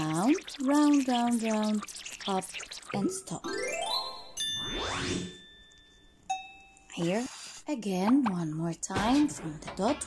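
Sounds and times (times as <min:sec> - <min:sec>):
bell-like ding: 0:04.4 - 0:06.9.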